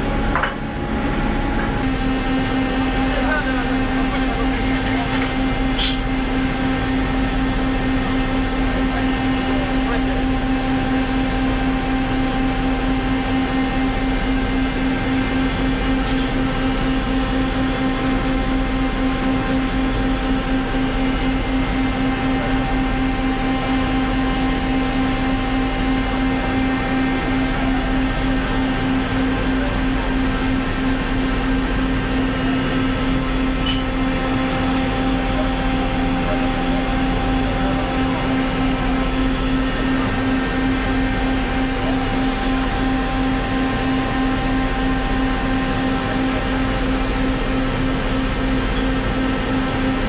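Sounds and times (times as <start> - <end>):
engine drone: 0.0 - 50.0.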